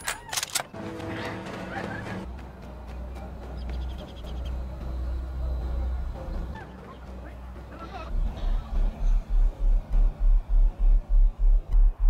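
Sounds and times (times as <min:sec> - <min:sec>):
low rumble: 0:08.1 - 0:12.0.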